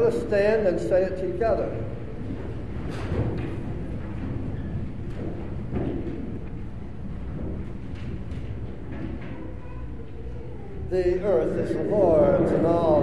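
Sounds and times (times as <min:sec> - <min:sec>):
people shuffling and rustling: 0:00.0 - 0:13.0
steady low hum: 0:00.0 - 0:13.0.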